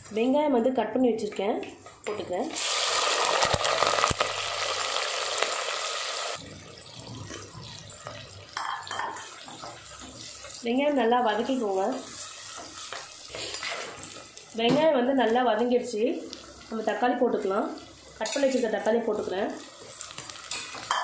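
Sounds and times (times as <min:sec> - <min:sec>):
onions sizzling in hot oil: 0:02.1 - 0:21.0.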